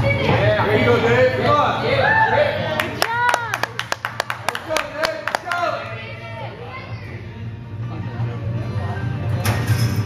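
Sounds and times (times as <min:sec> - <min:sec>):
people clapping quickly: 0:02.8 - 0:05.7.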